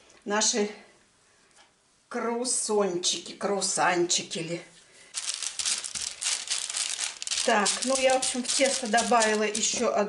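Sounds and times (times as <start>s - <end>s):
baking parchment crinkling: 5.1s - 9.9s.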